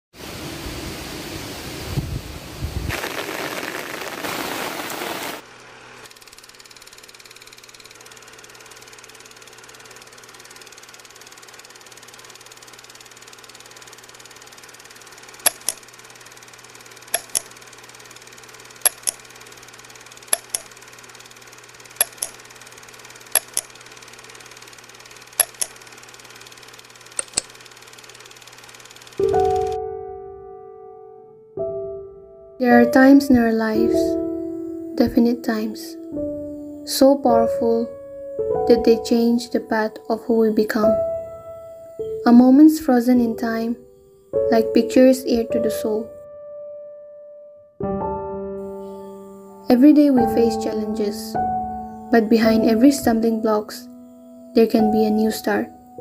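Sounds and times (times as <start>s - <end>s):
low hum and hiss: 0.2s - 6.1s, 29.2s - 46.2s, 48.0s - 56.0s
wind buffeting microphone: 1.8s - 2.9s
sharp double clicks: 15.2s - 15.9s, 17.1s - 17.6s, 18.2s - 19.3s, 20.1s - 29.8s.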